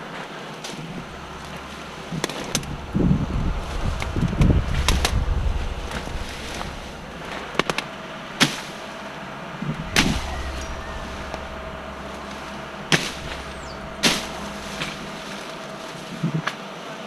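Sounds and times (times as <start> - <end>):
steady low hum: 0.6 - 16.5.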